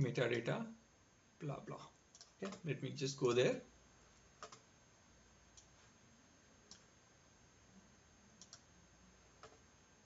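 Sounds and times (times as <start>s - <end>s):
computer mouse clicks: 2.1s - 2.7s, 4.4s - 4.6s, 6.7s - 6.9s, 8.4s - 8.7s, 9.4s - 9.6s.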